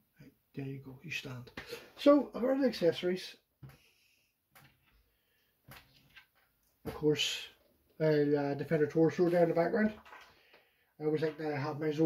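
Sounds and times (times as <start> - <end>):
plastic items clicking on shelf: 9.9 - 10.6.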